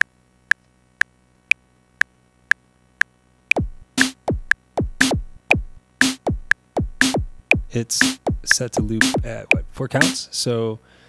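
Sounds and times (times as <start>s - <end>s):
deep kick drums: 3.5s - 10.2s
metronome clicking: 3.5s - 10.2s
snare-like hits: 3.5s - 10.2s.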